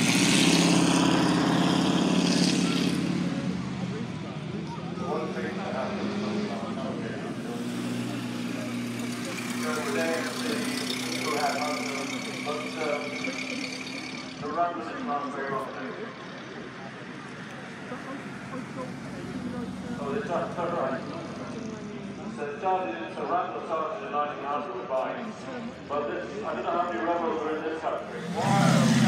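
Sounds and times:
car engine running: 0:00.0 - 0:22.5, 0:28.0 - 0:29.0.

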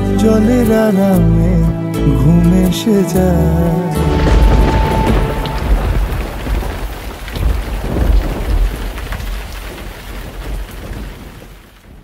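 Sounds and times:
steady rain: 0:03.1 - 0:12.0
deep rolling thunder: 0:03.9 - 0:12.0.

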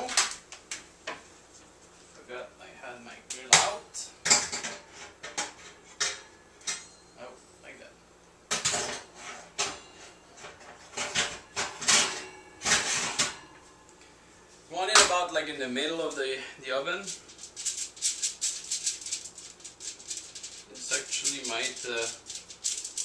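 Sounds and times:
kitchenware clattering in a cabinet: 0:08.5 - 0:13.5.

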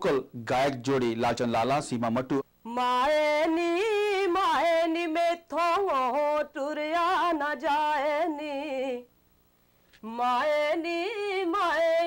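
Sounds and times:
woman singing unaccompanied: 0:02.6 - 0:09.1, 0:10.0 - 0:12.0.

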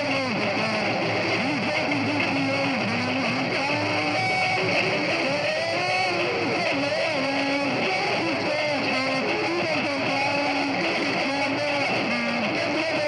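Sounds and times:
background din: 0:00.0 - 0:13.0
live music melody: 0:00.0 - 0:13.0.

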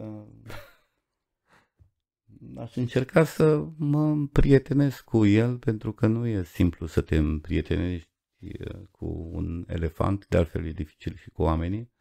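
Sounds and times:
man speaking: 0:02.4 - 0:11.9.

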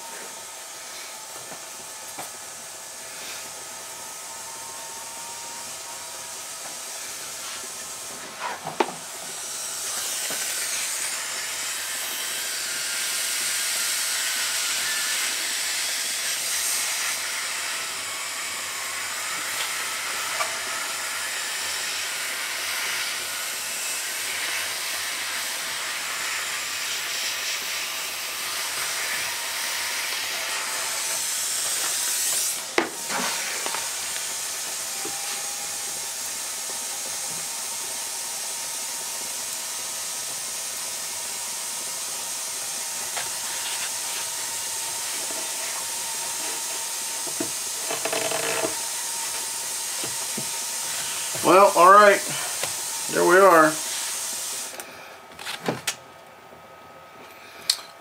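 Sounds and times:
steam hissing from hose: 0:00.0 - 0:55.3.

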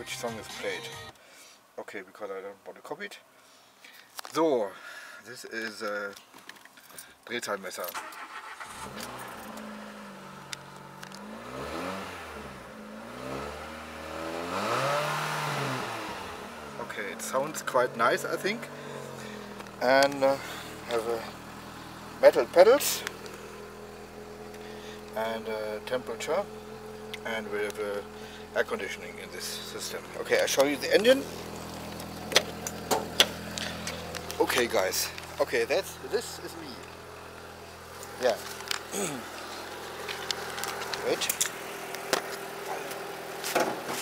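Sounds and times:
car engine revving: 0:08.0 - 0:44.0.

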